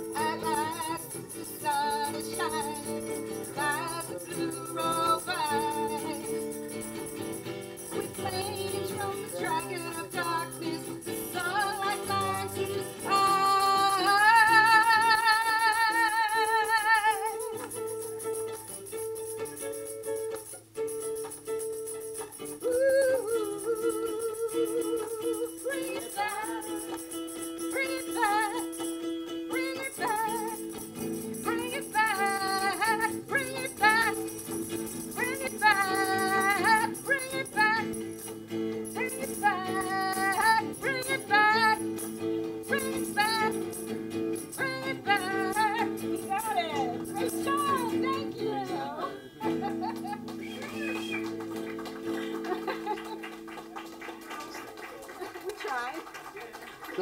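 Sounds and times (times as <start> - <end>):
woman singing with vibrato: 0.0 - 7.0, 7.8 - 18.7, 22.5 - 50.4
tambourine jingling: 0.0 - 57.0.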